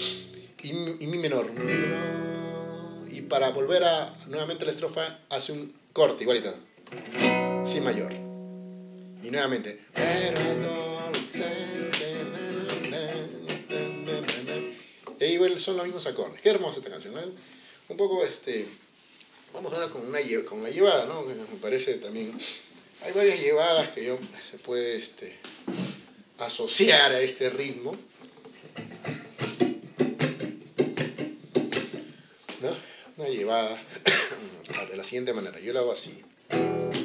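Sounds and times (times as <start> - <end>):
acoustic guitar strumming chords: 0.0 - 0.6, 1.2 - 4.8, 6.9 - 15.0, 36.5 - 37.0
man singing: 0.0 - 4.2, 9.9 - 14.9.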